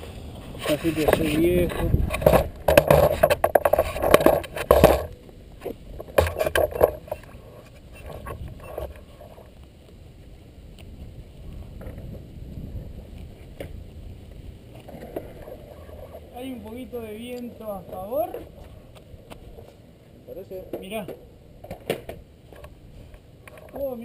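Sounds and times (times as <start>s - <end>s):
faint low rumble: 0.0s - 23.5s
camera handling knocks and scraping: 1.0s - 9.0s.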